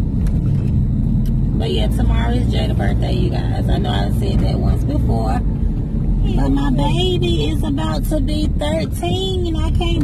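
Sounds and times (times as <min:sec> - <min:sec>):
car rumble from inside cabin: 0:00.0 - 0:10.0
person talking: 0:01.6 - 0:05.4, 0:06.2 - 0:10.0.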